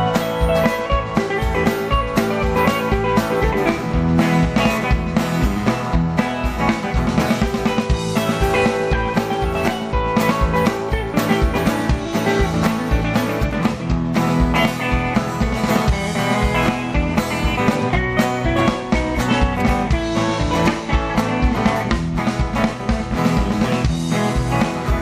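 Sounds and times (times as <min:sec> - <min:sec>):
bass guitar: 0:00.0 - 0:25.0
drum kit beat: 0:00.0 - 0:25.0
electric guitar lead: 0:00.0 - 0:25.0
strummed acoustic guitar: 0:00.0 - 0:25.0.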